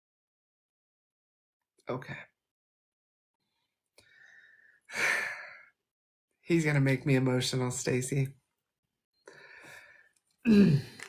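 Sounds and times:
woman breathing in: 0:04.0 - 0:05.7, 0:09.3 - 0:10.2
woman sighing: 0:10.4 - 0:11.0.

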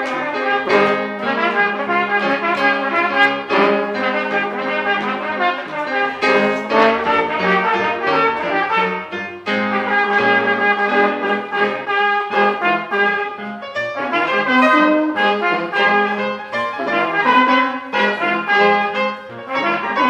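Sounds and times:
brass horn melody: 0:00.0 - 0:20.0
small jazz band playing: 0:00.0 - 0:20.0.

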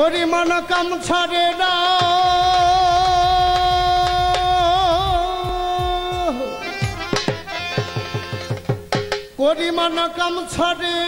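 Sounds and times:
hand drum roll: 0:02.0 - 0:09.3.

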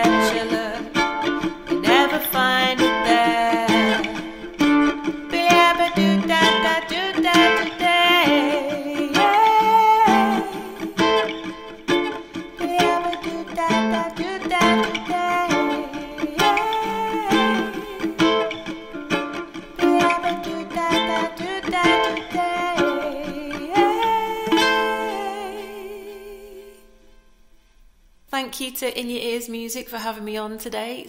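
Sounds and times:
woman singing: 0:00.0 - 0:11.4, 0:12.5 - 0:18.7, 0:19.7 - 0:27.0
ukulele strumming: 0:00.0 - 0:26.9.

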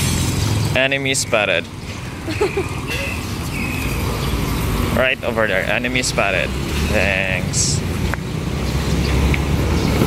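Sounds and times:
car passing close: 0:00.0 - 0:10.0
low engine and road rumble: 0:00.0 - 0:10.0
motorcycles approaching: 0:00.0 - 0:10.0.

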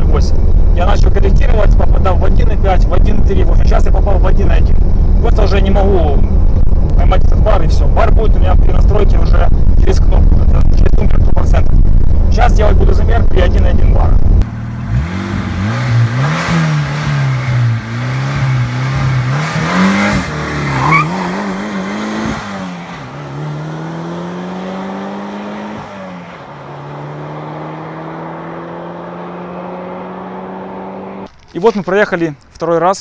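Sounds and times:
car engine accelerating hard: 0:14.2 - 0:31.3.

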